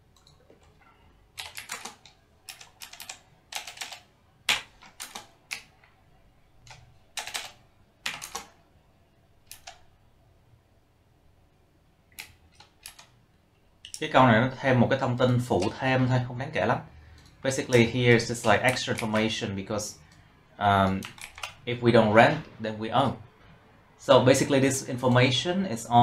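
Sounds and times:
typing on computer keyboard: 1.4s - 5.8s, 6.6s - 8.6s, 9.5s - 9.9s, 12.1s - 13.1s, 20.8s - 21.6s.

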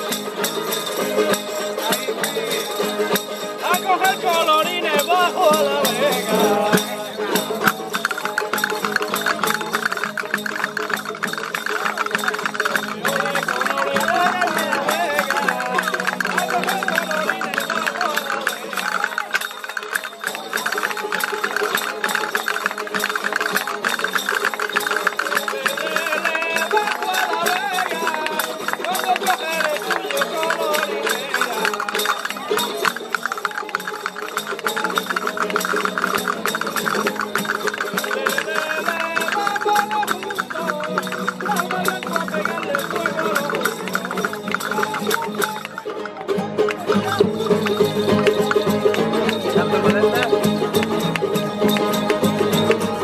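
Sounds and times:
acoustic guitars strumming: 0.0s - 53.0s
lute playing tune: 0.0s - 53.0s
shaken wooden jingle: 0.0s - 53.0s
wooden hand percussion clicking: 0.0s - 53.0s.

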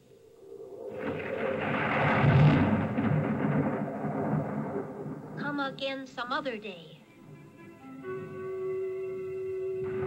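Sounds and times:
thunder rumble from tv speakers: 0.0s - 6.4s, 9.8s - 10.0s.

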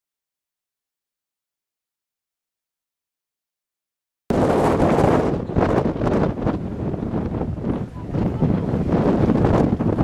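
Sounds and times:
wind buffeting microphone: 4.3s - 10.0s.

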